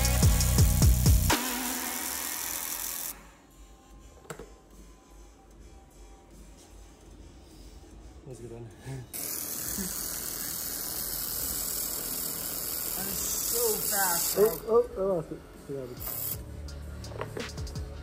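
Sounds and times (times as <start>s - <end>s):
laser welder hissing: 9.2s - 14.7s.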